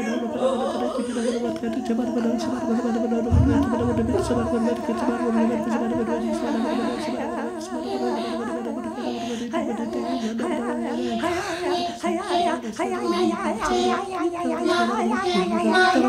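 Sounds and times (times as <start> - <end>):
low hummed vocal drone: 0.0 - 16.0
short deep low sound: 3.3 - 5.2
voices warbling with vibrato: 3.3 - 7.2.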